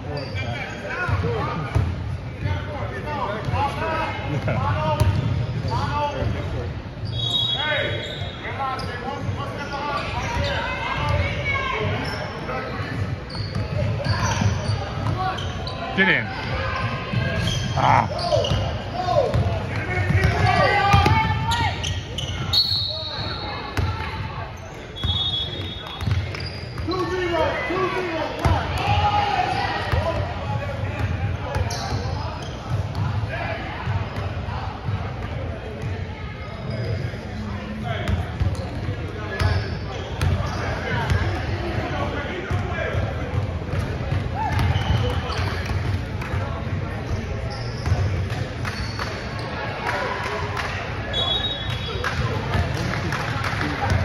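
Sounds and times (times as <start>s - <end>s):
voices echoing in gym: 0.0s - 54.0s
basketballs bouncing on hardwood: 20.1s - 21.5s, 43.3s - 45.0s.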